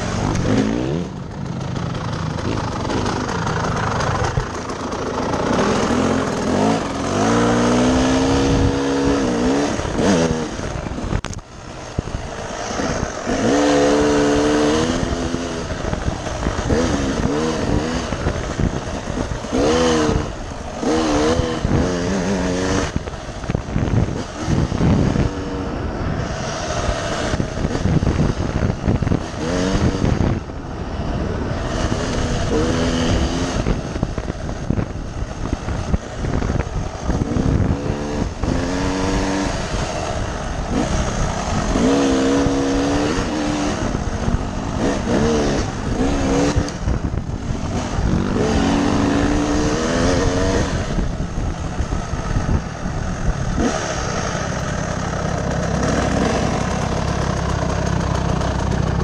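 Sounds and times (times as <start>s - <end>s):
dirt bike engine revving: 0.0s - 59.0s
rough ride noise: 0.0s - 59.0s.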